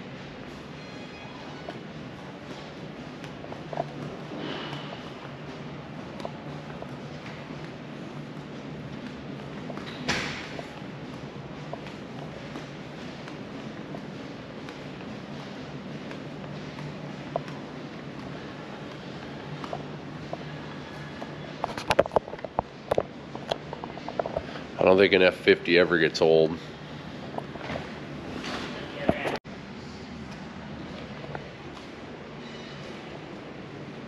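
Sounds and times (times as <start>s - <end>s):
low hum of indoor hall: 0.0s - 34.0s.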